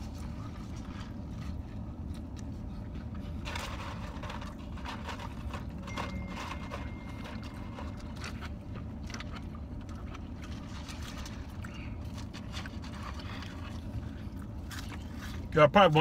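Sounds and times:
chewing: 0:00.0 - 0:15.5
paper wrappers rustling: 0:00.0 - 0:15.5.

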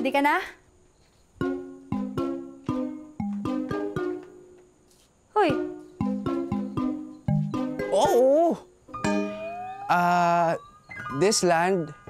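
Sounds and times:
plucked string music: 0:01.4 - 0:04.4, 0:05.9 - 0:11.2.

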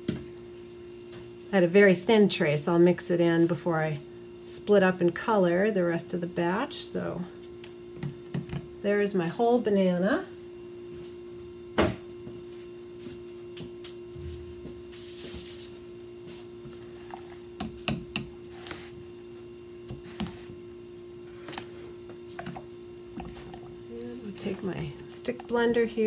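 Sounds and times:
steady electrical hum: 0:00.0 - 0:26.0.

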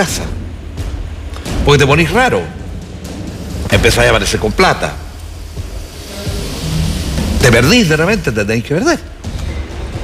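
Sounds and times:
faint background music: 0:00.0 - 0:10.0
faint hiss: 0:01.3 - 0:09.3.

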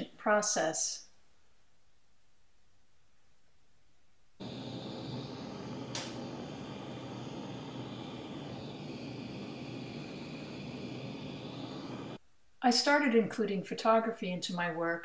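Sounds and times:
gas torch hissing: 0:04.4 - 0:12.2
sharp click: 0:05.8 - 0:06.2.

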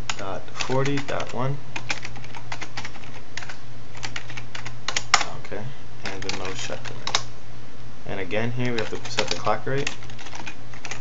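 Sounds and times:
computer keyboard typing: 0:00.0 - 0:05.4, 0:06.0 - 0:07.3, 0:08.6 - 0:11.0
steady low hum: 0:00.0 - 0:11.0.

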